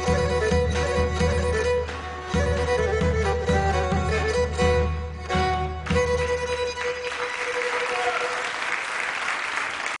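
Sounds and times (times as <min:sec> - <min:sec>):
audience applauding: 0:06.7 - 0:10.0.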